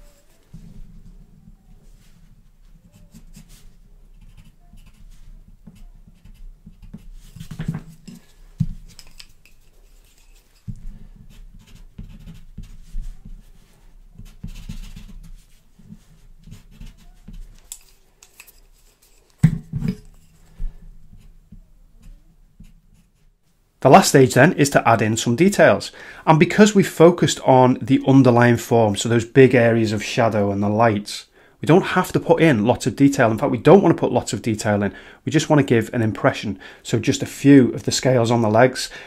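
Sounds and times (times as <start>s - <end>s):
pencil scratching on paper: 2.8s - 7.7s, 9.5s - 10.6s, 11.2s - 19.2s.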